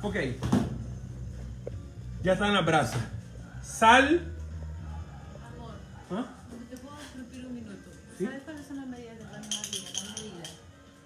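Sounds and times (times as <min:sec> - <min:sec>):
salt shaker rattling: 0:09.2 - 0:10.6.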